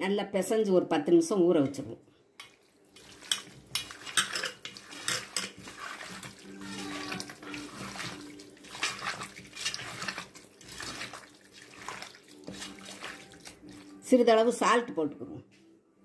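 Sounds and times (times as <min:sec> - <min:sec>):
raw chicken squelching: 0:04.8 - 0:14.0.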